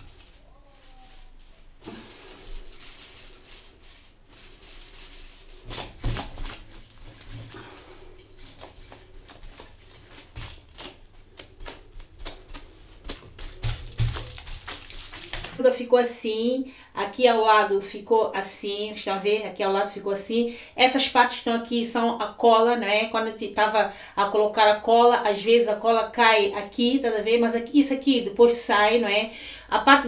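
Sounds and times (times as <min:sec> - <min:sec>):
foil crinkles and clicks: 0:00.0 - 0:15.6.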